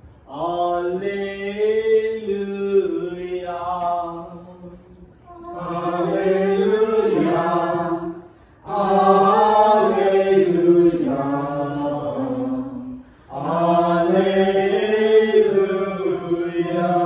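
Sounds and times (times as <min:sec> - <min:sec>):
man singing a slow chant: 0:00.3 - 0:05.1.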